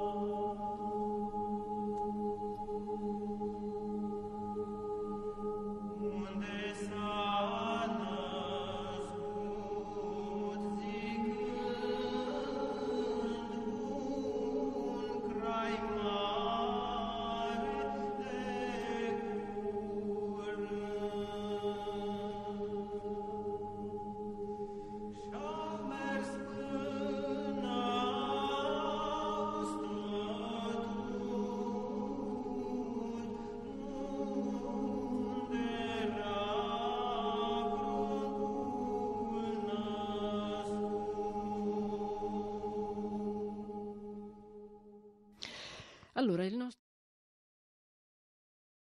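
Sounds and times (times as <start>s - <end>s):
vocal ensemble singing in harmony: 0.0s - 46.0s.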